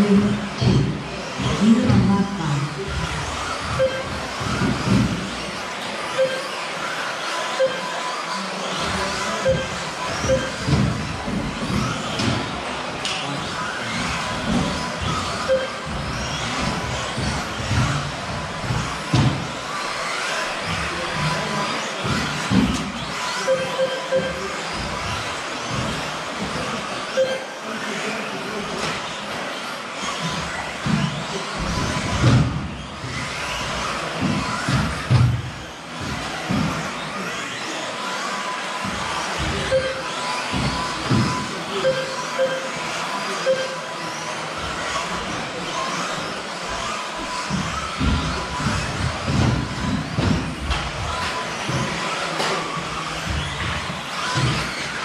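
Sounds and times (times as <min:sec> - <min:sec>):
rc car motors and tyres: 0:00.0 - 0:55.0.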